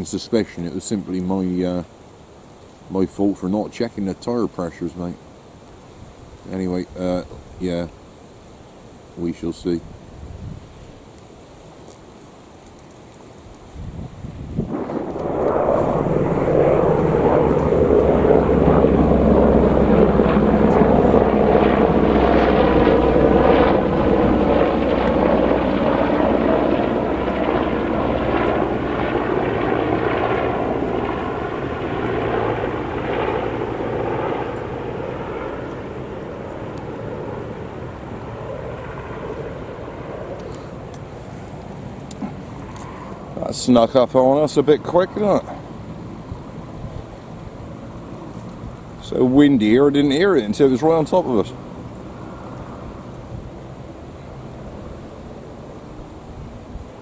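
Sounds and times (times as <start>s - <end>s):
helicopter flying overhead: 14.7s - 57.0s.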